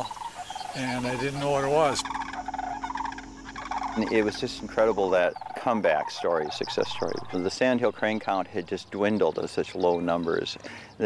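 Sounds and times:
cranes calling: 0:00.0 - 0:08.8.

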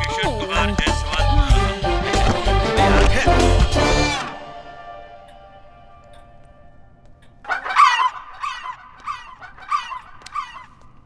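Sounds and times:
goose-like honks: 0:07.4 - 0:10.8.

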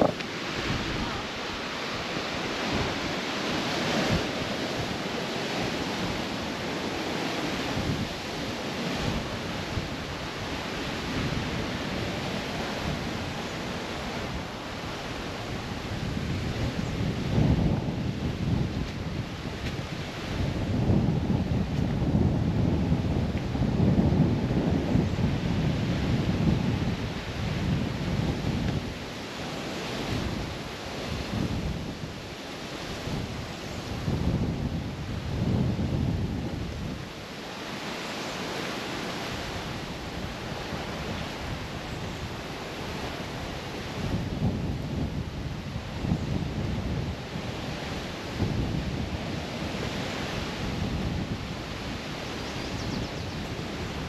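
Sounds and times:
surf hiss: 0:00.0 - 0:54.0
wind rumbling on microphone: 0:00.0 - 0:54.0.

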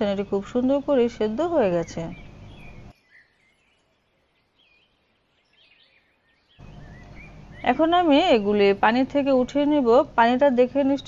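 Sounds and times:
woman speaking: 0:00.0 - 0:02.2, 0:07.7 - 0:11.0.

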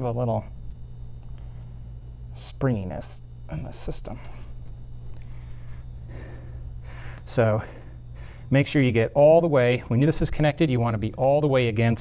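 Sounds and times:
steady low hum: 0:00.0 - 0:12.0
person breathing: 0:05.2 - 0:08.5.

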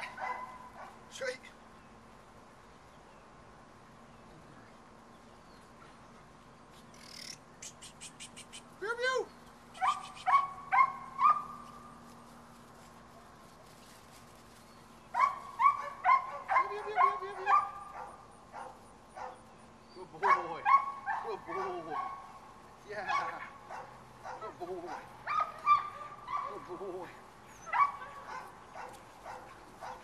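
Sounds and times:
puppies yipping: 0:09.8 - 0:12.0, 0:15.1 - 0:30.0.

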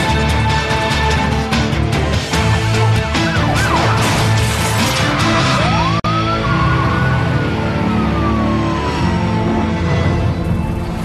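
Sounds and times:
dramatic music with steady beat: 0:00.0 - 0:11.0.

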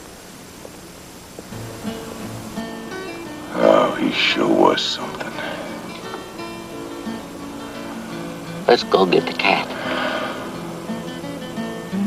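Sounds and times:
slow acoustic guitar music: 0:01.3 - 0:12.0.

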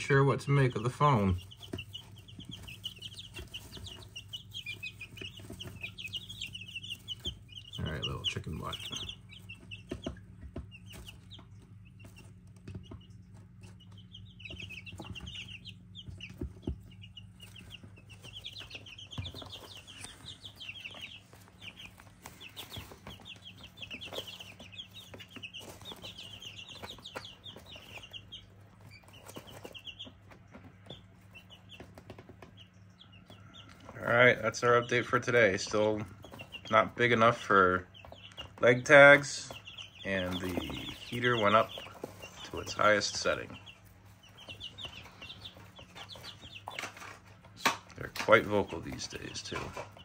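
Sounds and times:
chicks peeping: 0:00.0 - 0:50.0.

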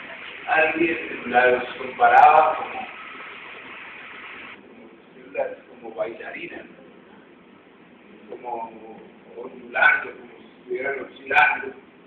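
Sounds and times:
room and recording hiss: 0:00.0 - 0:12.0.

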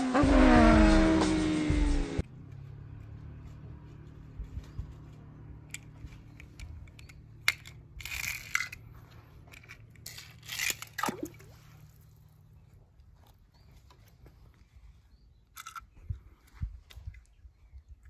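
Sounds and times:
toy car splashing into water: 0:10.2 - 0:11.6.

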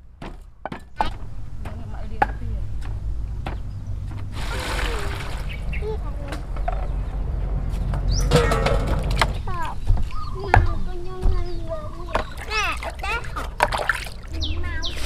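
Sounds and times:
water pouring into plastic basin: 0:04.3 - 0:05.5, 0:12.3 - 0:14.4.

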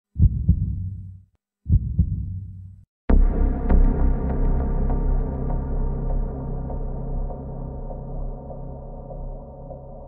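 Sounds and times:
heartbeat double thump: 0:00.2 - 0:01.1, 0:01.7 - 0:02.6.

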